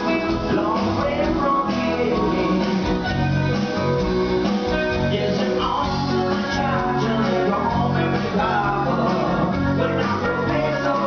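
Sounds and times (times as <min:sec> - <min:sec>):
bass: 0:00.0 - 0:11.0
drums: 0:00.0 - 0:11.0
electric guitar: 0:00.0 - 0:11.0
keyboard: 0:00.0 - 0:11.0.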